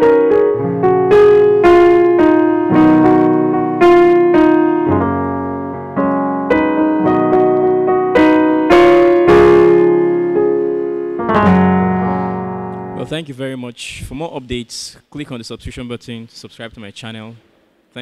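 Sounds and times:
electronic keyboard piano chords: 0:00.0 - 0:13.2.

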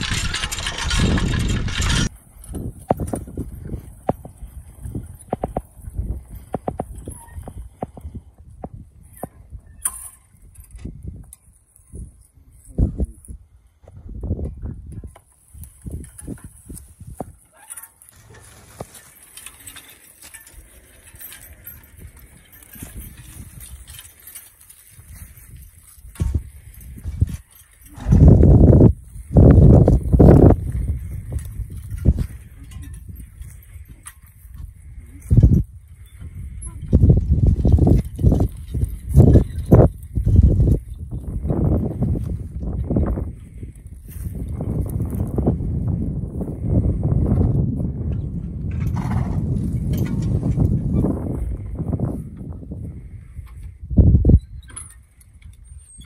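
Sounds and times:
harness chains and plow rattling: 0:00.0 - 0:12.2, 0:15.1 - 0:56.0
low wind buffeting on microphone: 0:00.0 - 0:17.5, 0:20.5 - 0:56.0
hooves on the ground: 0:00.0 - 0:56.0.

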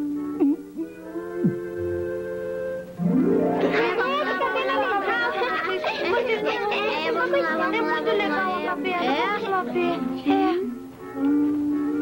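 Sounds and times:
film music sustained chord: 0:01.8 - 0:05.7
children chattering: 0:03.6 - 0:12.0.

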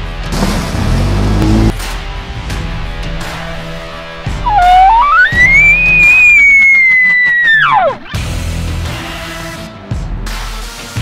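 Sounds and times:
elk bugle: 0:03.1 - 0:08.2.

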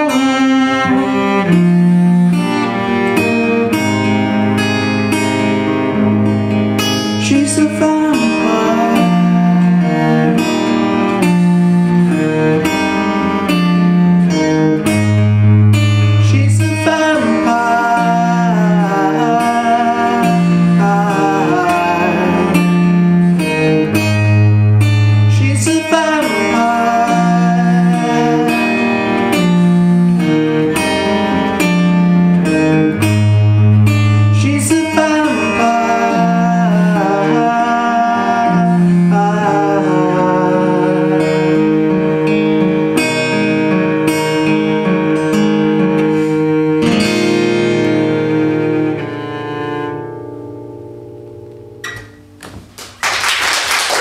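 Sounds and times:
bowed cello low notes: 0:00.0 - 0:50.5
acoustic guitar strumming: 0:00.0 - 0:53.0.

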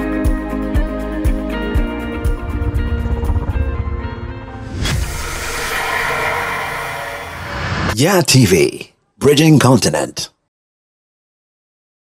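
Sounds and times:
hissing shimmering swell: 0:01.4 - 0:08.0
sharp hit: 0:01.8 - 0:08.0.

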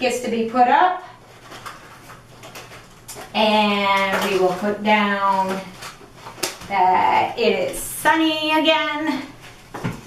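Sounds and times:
low room hum: 0:00.0 - 0:10.0
cards clicking and rustling: 0:01.3 - 0:06.8.

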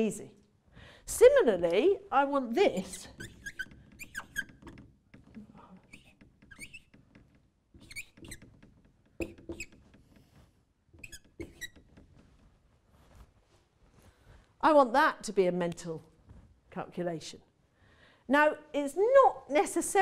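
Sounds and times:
marker squeaking on whiteboard: 0:02.6 - 0:12.4.

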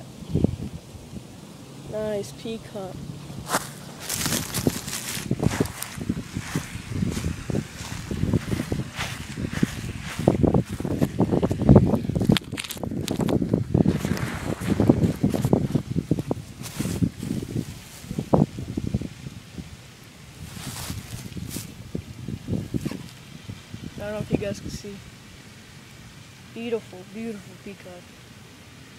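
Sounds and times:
phone handling rustling and scraping: 0:12.2 - 0:13.4.

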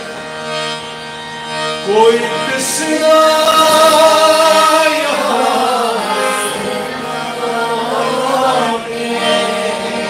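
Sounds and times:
harmonium chord: 0:00.0 - 0:10.0
man singing: 0:01.8 - 0:10.0.

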